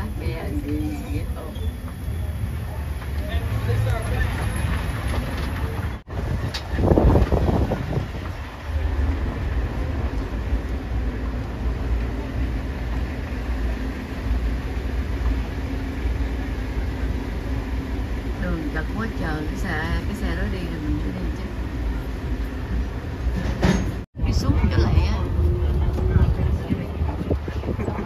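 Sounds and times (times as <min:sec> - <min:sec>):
tram rumbling along a sandy road: 0:00.0 - 0:28.0.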